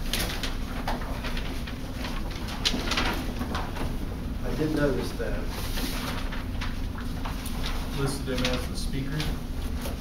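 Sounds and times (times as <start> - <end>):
low room hum: 0.0 - 10.0
papers being shuffled: 0.0 - 10.0
sharp paper crinkles: 0.0 - 10.0.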